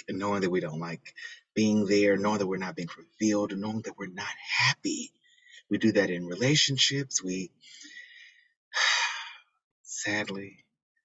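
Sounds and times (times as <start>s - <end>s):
breathy sigh: 7.6s - 9.5s
person breathing in: 7.6s - 9.5s.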